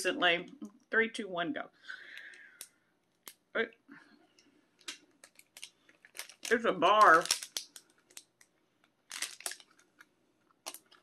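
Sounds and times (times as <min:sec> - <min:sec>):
wrapper crinkling: 0:04.8 - 0:11.0.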